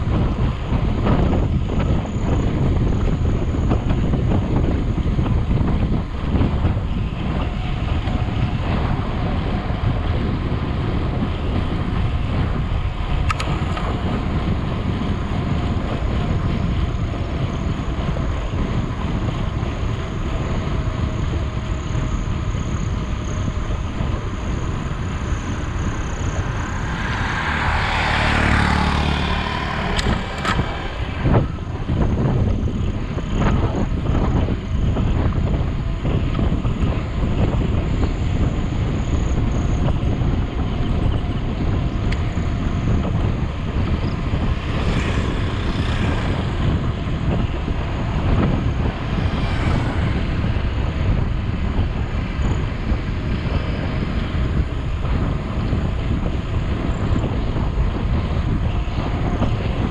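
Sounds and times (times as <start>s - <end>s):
low road rumble: 0.0s - 59.9s
wind rushing over microphone: 0.0s - 59.9s
vehicle passing: 23.9s - 32.9s, 42.3s - 55.0s.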